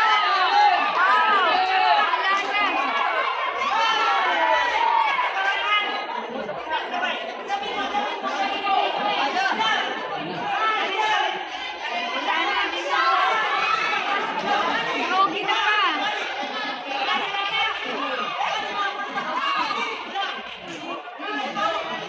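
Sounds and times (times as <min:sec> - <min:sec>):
crowd chattering and shouting: 0:00.0 - 0:22.0.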